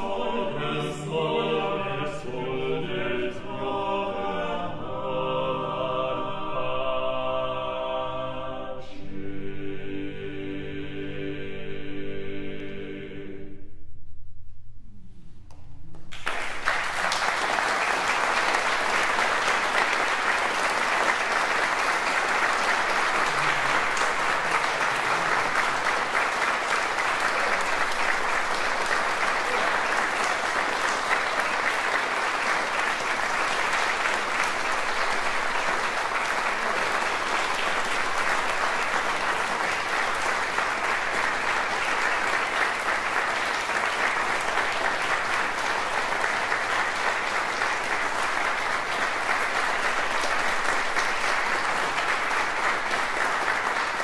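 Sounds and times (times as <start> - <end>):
audience applauding: 16.0 - 54.0.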